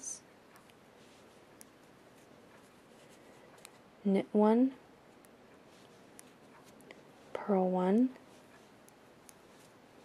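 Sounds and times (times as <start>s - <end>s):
yarn rubbing: 5.2s - 10.0s.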